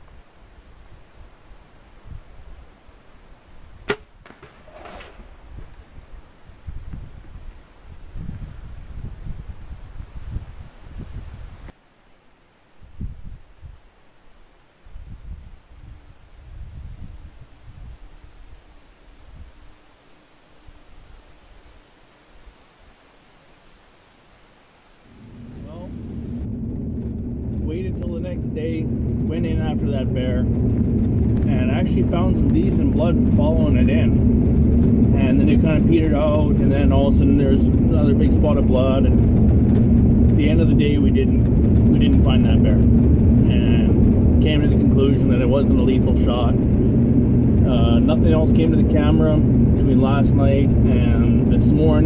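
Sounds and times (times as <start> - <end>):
low rumbling noise: 0.0 - 11.8, 24.1 - 52.0
bowstring snap: 3.8 - 5.2
vehicle engine and road noise: 25.1 - 52.0.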